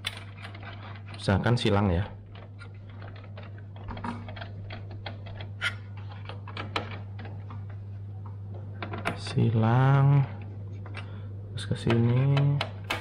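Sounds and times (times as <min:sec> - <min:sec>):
steady low hum: 0:00.0 - 0:13.0.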